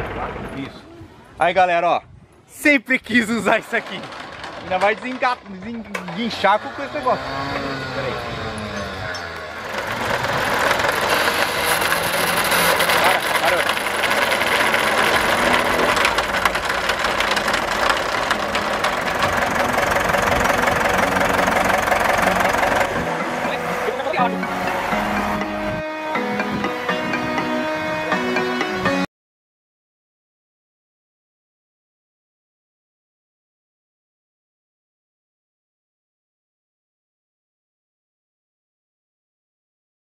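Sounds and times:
electric winch grinding drone: 0:03.4 - 0:28.4
music: 0:22.2 - 0:29.1.

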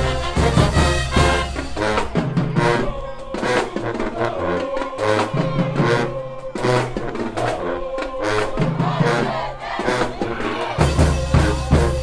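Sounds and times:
crowd chanting and shouting: 0:00.0 - 0:12.0
heavy steady drumbeat: 0:00.0 - 0:12.0
loud music: 0:00.0 - 0:12.0.

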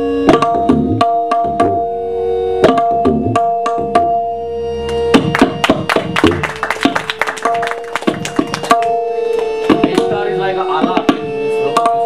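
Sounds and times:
tabla drums struck by hand: 0:00.3 - 0:01.8, 0:02.6 - 0:04.2, 0:05.0 - 0:10.2, 0:10.8 - 0:12.0.

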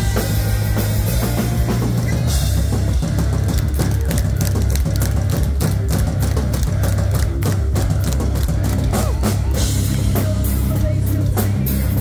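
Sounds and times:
bass guitar: 0:00.0 - 0:12.0
distorted electric guitars: 0:00.0 - 0:12.0
drum kit: 0:00.0 - 0:12.0
live rock band: 0:00.0 - 0:12.0.

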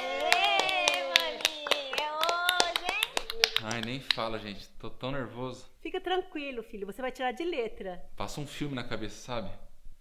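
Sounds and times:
people cheering: 0:00.0 - 0:04.0
people clapping: 0:00.0 - 0:04.6.

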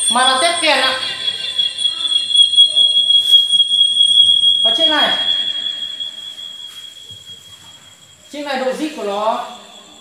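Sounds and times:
microphone feedback squeal: 0:00.0 - 0:10.0.

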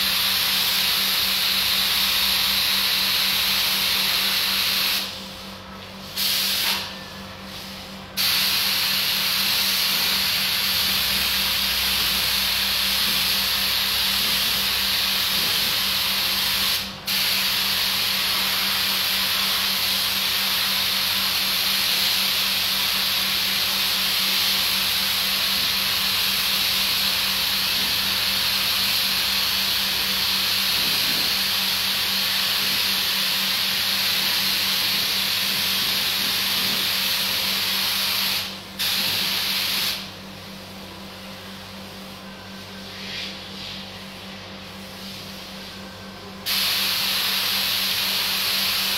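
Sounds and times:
paint spray gun hissing: 0:08.2 - 0:25.2, 0:25.8 - 0:40.1, 0:46.5 - 0:48.9.

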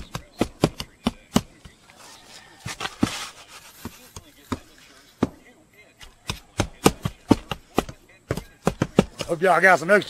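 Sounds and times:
hammer striking roofing nails: 0:00.0 - 0:01.6, 0:06.1 - 0:09.4.

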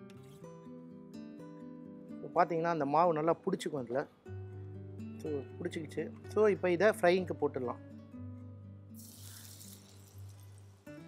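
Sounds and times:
soft background music: 0:00.0 - 0:11.0
food sizzling in hot oil: 0:09.0 - 0:11.0.

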